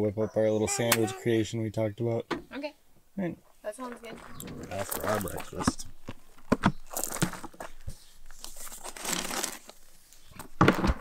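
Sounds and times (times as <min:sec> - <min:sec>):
rustling: 0:03.7 - 0:11.0.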